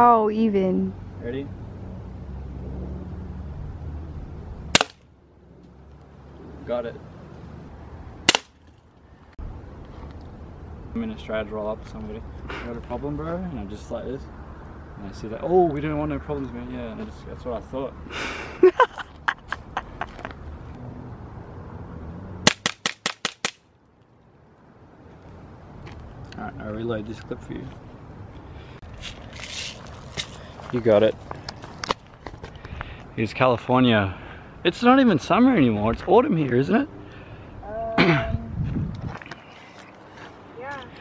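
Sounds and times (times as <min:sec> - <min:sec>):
pistol shot crack: 0:04.7 - 0:05.0, 0:08.3 - 0:08.6, 0:22.4 - 0:23.6.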